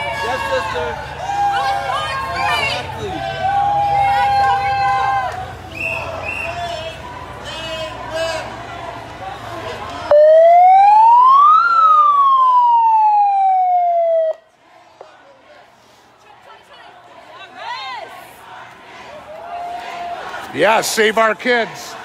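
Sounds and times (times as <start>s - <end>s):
crowd chatter: 0.0s - 22.0s
electronic siren wail: 10.1s - 14.4s.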